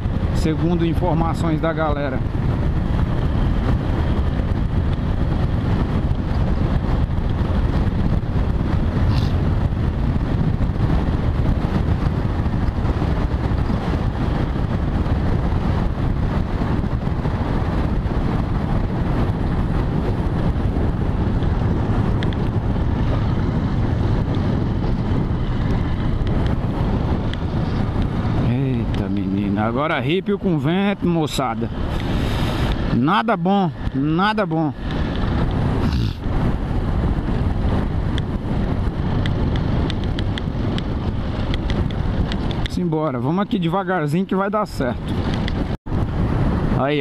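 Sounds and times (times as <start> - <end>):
wind buffeting microphone: 0.0 - 47.0
motorcycle engine running: 1.5 - 31.0.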